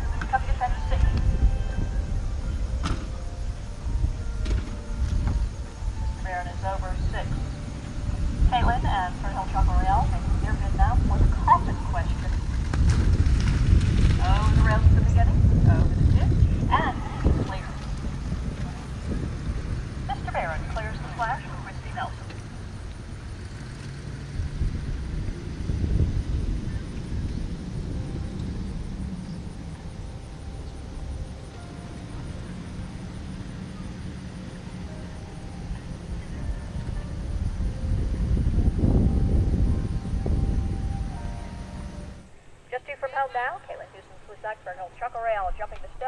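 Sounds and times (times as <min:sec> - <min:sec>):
wind on microphone: 0:00.0 - 0:34.3, 0:35.8 - 0:42.4
truck engine rumble: 0:00.0 - 0:42.4
distant voices: 0:00.0 - 0:46.0.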